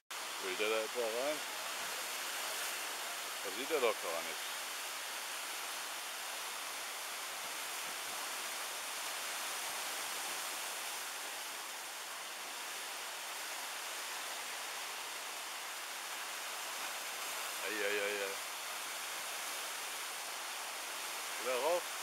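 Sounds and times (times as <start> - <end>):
surf breaking over rocks: 16.8 - 18.4, 21.0 - 21.8.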